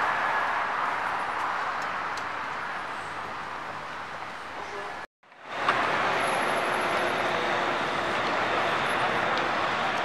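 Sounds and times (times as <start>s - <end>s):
city street traffic: 0.0s - 10.0s.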